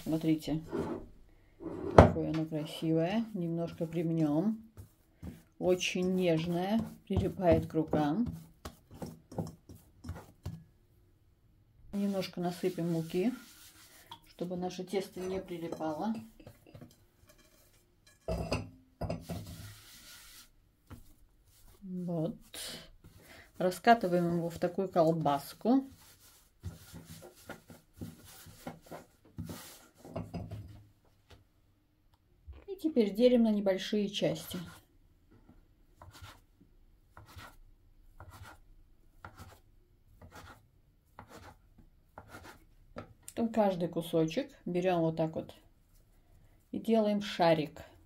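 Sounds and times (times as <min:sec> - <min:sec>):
hands rubbing dough: 0:00.0 - 0:00.6, 0:02.6 - 0:10.7, 0:11.9 - 0:15.1, 0:19.2 - 0:30.2.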